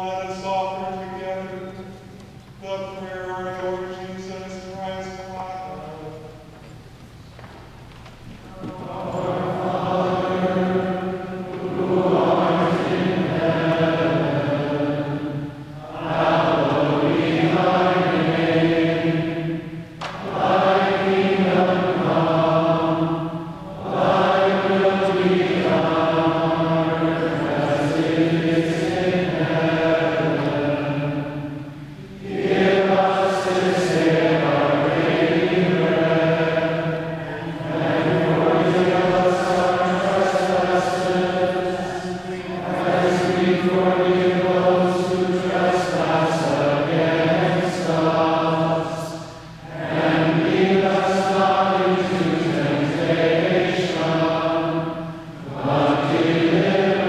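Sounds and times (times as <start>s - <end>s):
choir singing a chant: 8.5s - 57.0s.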